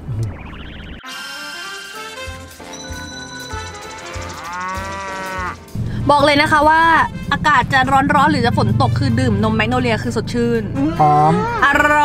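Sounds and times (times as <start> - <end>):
background music with steady beat: 1.6 - 11.4
cow mooing: 4.0 - 5.7, 10.8 - 12.0.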